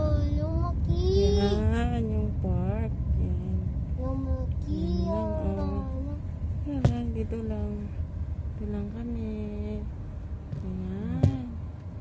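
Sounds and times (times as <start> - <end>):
young child singing: 0.0 - 1.7, 4.0 - 6.2
car rumbling on the road: 0.0 - 12.0.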